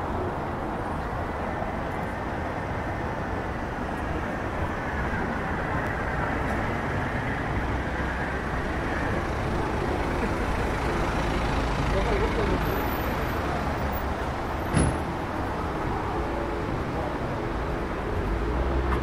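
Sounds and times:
car traffic rumble: 0.0s - 19.0s
faint voices of passers-by: 3.7s - 19.0s.

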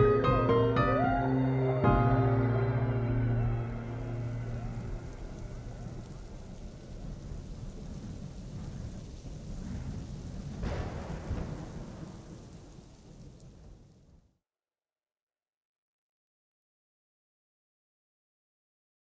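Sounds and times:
background music: 0.0s - 6.3s
low noisy wash: 0.0s - 9.0s.

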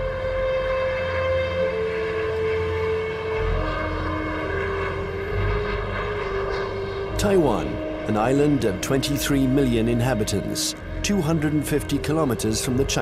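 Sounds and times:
jet airliner rumble: 0.0s - 13.0s
low sustained musical notes: 0.0s - 13.0s.

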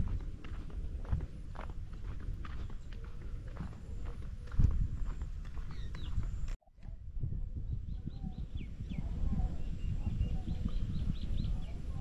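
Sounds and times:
low rumbling on microphone: 0.0s - 12.0s
small birds chirping: 1.5s - 6.6s, 7.6s - 12.0s.

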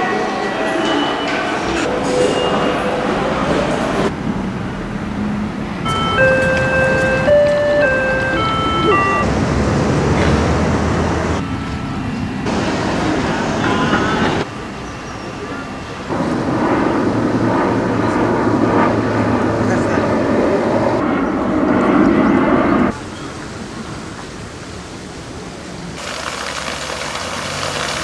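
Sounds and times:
traffic noise: 0.8s - 28.0s
electronic chime melody: 5.8s - 9.3s, 11.4s - 12.5s
voices: 5.8s - 9.3s, 11.4s - 16.2s, 17.9s - 21.0s.

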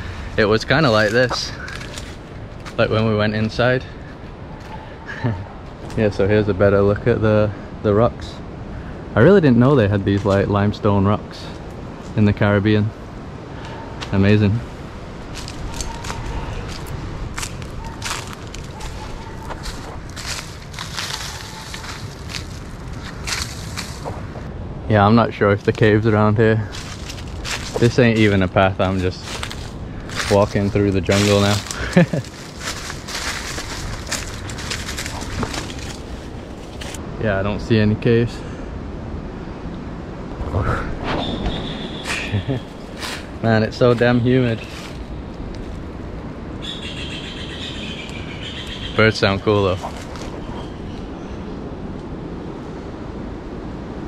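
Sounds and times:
steady low rumble: 0.0s - 46.6s
footsteps crunching dry leaves: 0.6s - 3.0s, 15.2s - 24.4s, 26.7s - 37.0s, 42.1s - 45.9s, 49.4s - 51.1s
steady high-pitched call: 15.5s - 16.7s, 17.6s - 19.9s, 46.6s - 49.1s.

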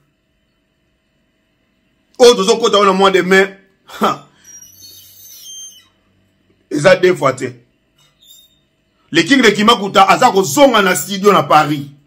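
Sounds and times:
man speaking: 2.2s - 4.3s, 6.7s - 7.6s, 9.1s - 12.0s.

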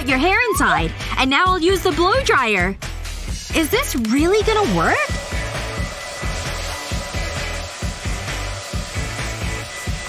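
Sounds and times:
background music with bass beat: 0.0s - 10.0s
hair dryer blowing into bottle: 4.0s - 10.0s.

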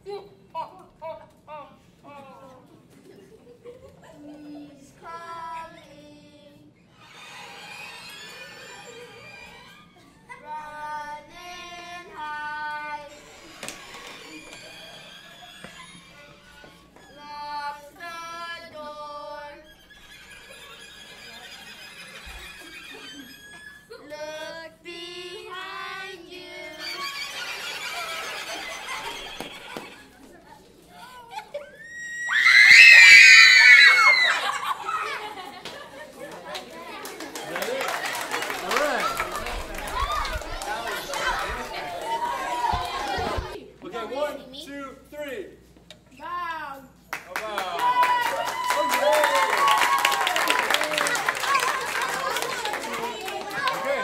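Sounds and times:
scratchy squealing violins: 6.9s - 10.2s, 13.0s - 17.4s, 19.4s - 24.1s, 26.4s - 29.8s
children clapping and shouting: 35.6s - 43.6s, 47.2s - 54.0s.

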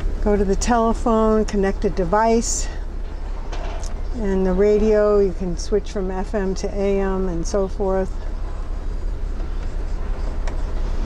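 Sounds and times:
air conditioning fan: 0.0s - 11.0s
car engine idling: 0.0s - 11.0s.

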